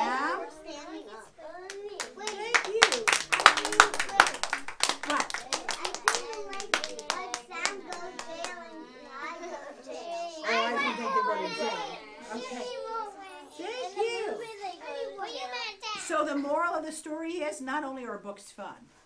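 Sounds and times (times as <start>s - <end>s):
children chattering and calling out: 0.0s - 16.8s
children applauding: 1.6s - 9.2s.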